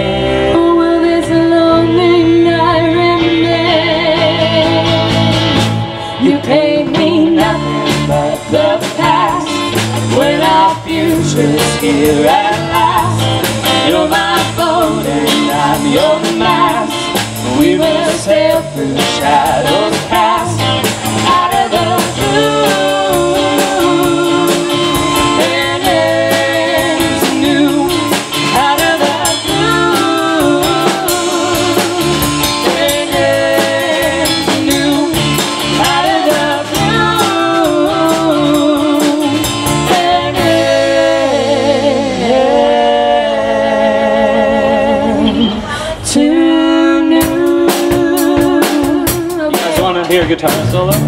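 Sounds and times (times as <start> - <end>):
electric bass: 0.0 - 51.0
electric guitar: 0.0 - 51.0
drum kit: 1.7 - 51.0.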